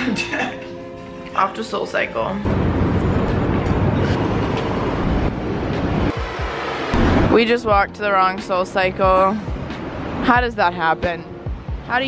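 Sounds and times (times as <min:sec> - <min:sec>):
traffic rushing past: 0:02.4 - 0:12.0.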